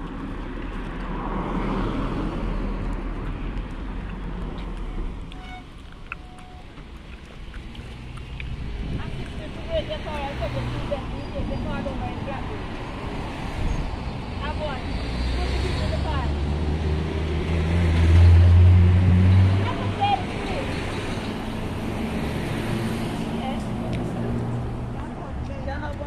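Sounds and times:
road traffic: 0.0 - 26.0.

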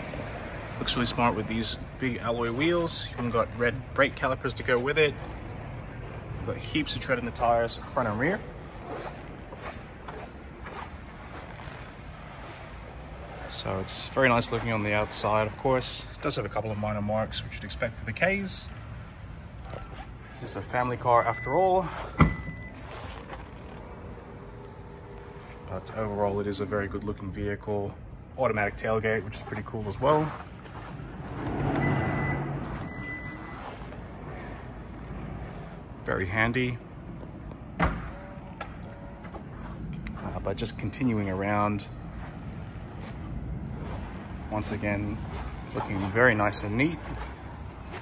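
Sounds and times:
high warning beeps: 21.2 - 22.8, 31.7 - 33.7.

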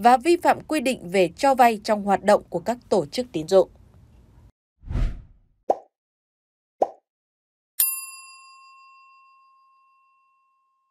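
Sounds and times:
bell-like ding: 7.8 - 10.9.

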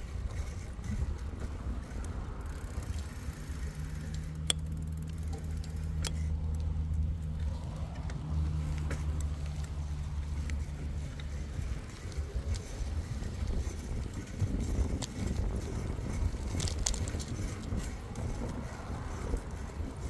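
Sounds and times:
low motor hum: 0.0 - 20.0.

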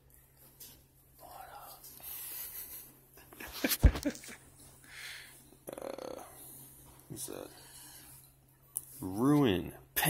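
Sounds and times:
man whispering: 1.1 - 2.2, 5.6 - 8.2.

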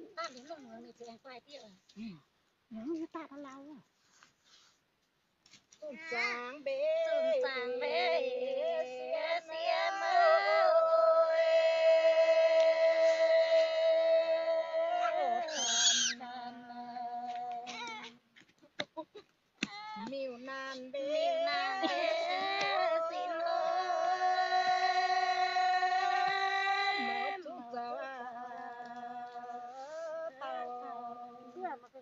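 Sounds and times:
high-pitched cry: 15.0 - 16.2
woman singing a long low note: 21.0 - 31.9.

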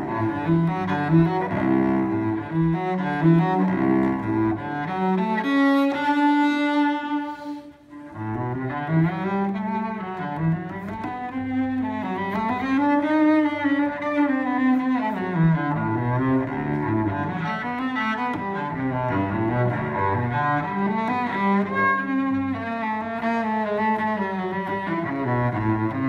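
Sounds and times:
bowed cello: 0.0 - 26.0.

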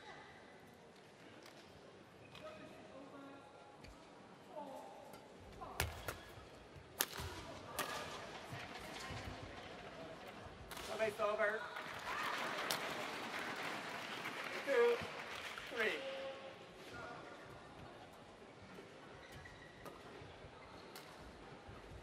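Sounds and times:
racket hitting shuttlecock: 7.0 - 8.2.

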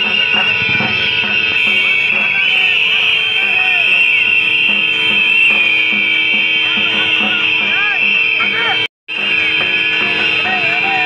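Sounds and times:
crowd of men whistling: 1.6 - 8.9.

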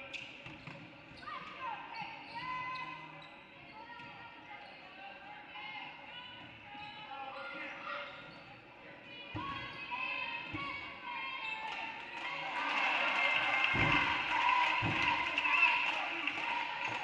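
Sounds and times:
voices echoing in hall: 0.0 - 17.0.

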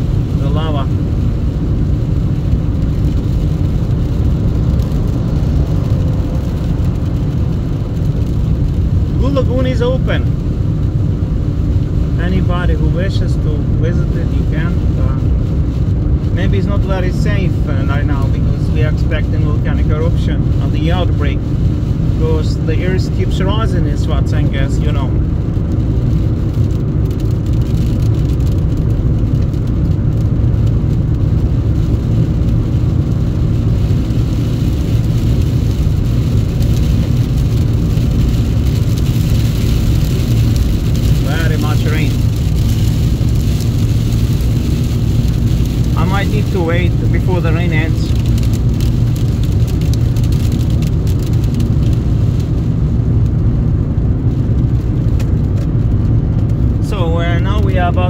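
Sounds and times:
car road noise on wet road: 0.0 - 58.0
person speaking: 41.2 - 42.2, 46.0 - 48.2.

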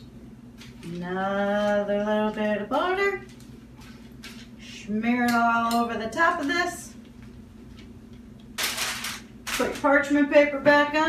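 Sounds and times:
woman speaking: 0.8 - 3.3, 4.6 - 7.0, 9.5 - 11.0.

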